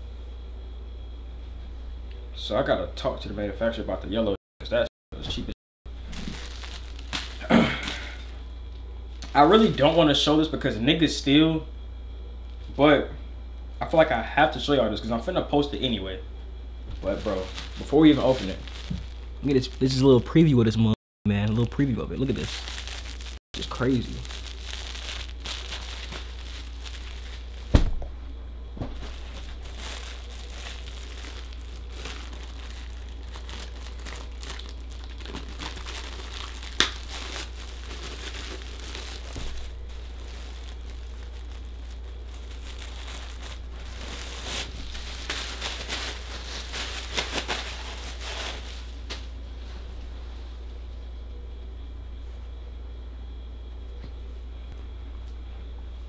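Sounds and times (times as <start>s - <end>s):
plastic bag rustling: 6.0s - 8.4s, 9.2s - 10.2s, 16.9s - 20.2s, 22.1s - 28.0s, 28.8s - 49.1s
thump: 27.7s - 28.1s.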